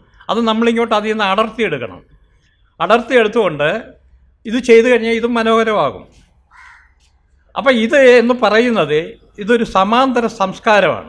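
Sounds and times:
man speaking: 0.0 - 2.1, 2.8 - 6.2, 7.5 - 11.0.

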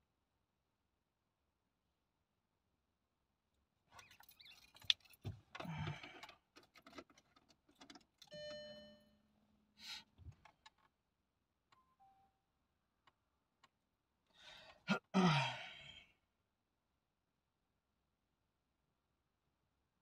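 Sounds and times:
handling noises inside a car: 4.0 - 8.7
brief beeps: 8.3 - 9.0, 11.8 - 12.4.

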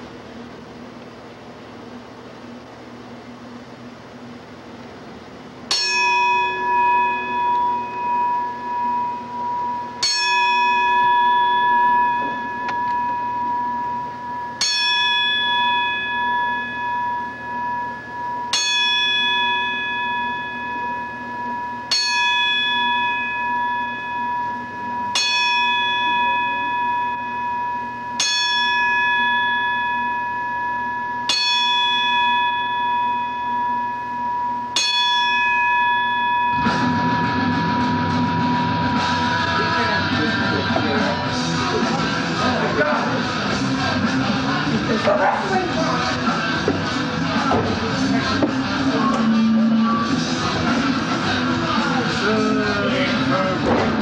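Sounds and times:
bell tolling: 5.7 - 54.0
rock music: 36.6 - 54.0.

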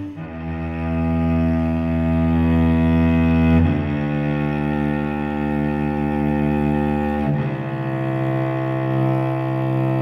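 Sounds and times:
cello bowed low notes: 0.0 - 10.0.

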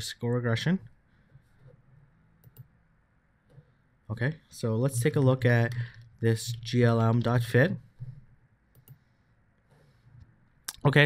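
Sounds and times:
faint computer clicks: 8.0 - 9.1.

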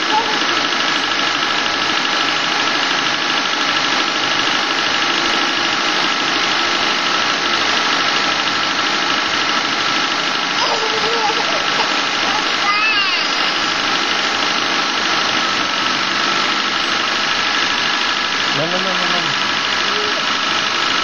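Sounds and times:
car engine idling: 0.0 - 21.0.

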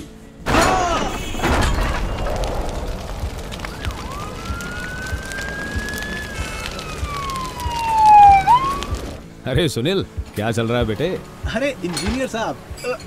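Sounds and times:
siren wailing: 3.3 - 9.2.

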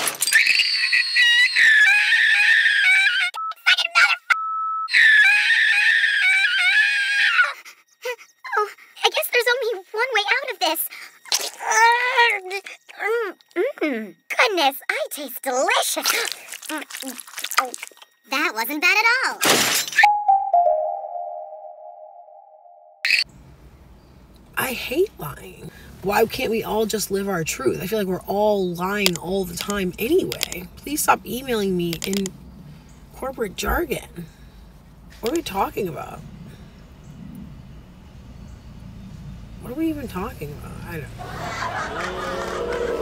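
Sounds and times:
high-pitched cartoon voice squealing: 0.6 - 3.4, 4.9 - 7.6
held ringing tone: 20.0 - 23.1.

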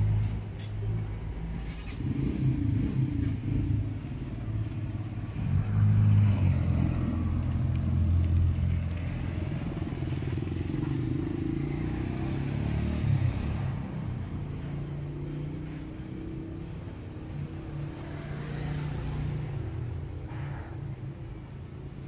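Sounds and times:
vehicle engine rumbling: 0.0 - 22.0.

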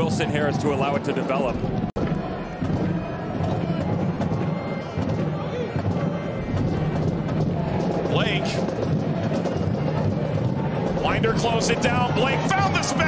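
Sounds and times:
stadium crowd singing and chanting: 0.0 - 13.0.

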